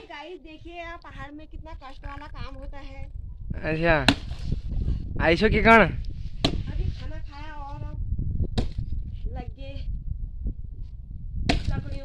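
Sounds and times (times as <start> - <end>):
axe chopping wood: 4.0 - 4.4, 6.4 - 6.7, 8.6 - 8.8, 11.5 - 11.8.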